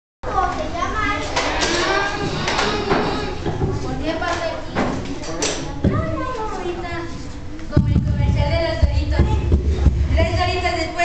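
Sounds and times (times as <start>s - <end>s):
children chattering and calling out: 0.2s - 11.0s.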